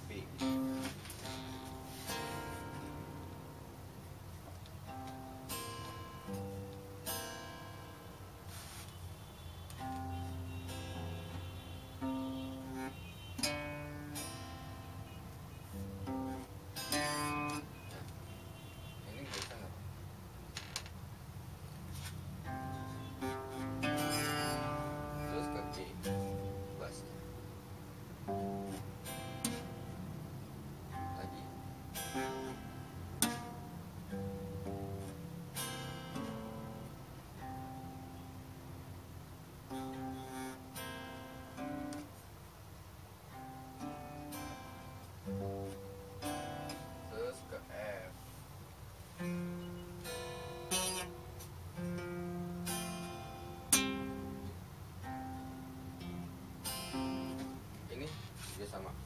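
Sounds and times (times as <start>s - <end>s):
classical guitar strummed slowly: 0.0s - 19.7s, 21.9s - 58.9s.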